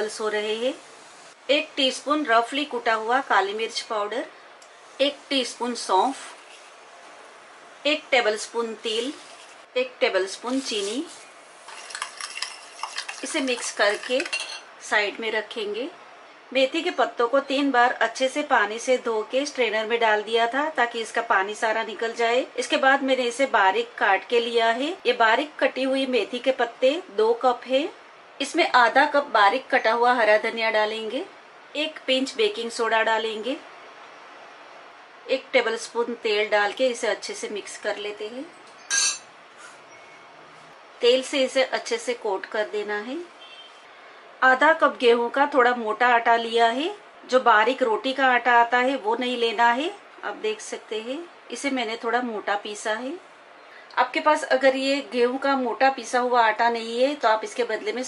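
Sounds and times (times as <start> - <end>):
soft rustling of leaves: 8.4 - 14.4
spoon clinking and scraping glass: 11.7 - 14.7, 38.8 - 39.3
sharp rustle or clink: 38.7 - 40.2.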